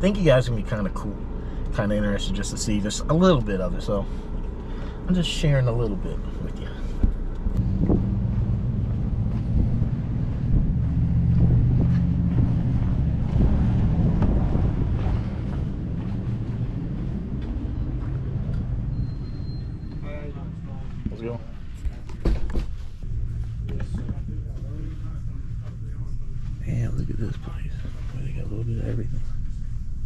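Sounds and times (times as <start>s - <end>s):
vehicle engine humming: 0.0s - 30.0s.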